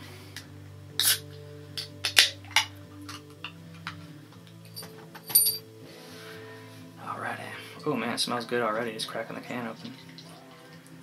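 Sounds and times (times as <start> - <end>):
quiet background music: 0.0 - 11.0
can hissing: 1.0 - 1.2.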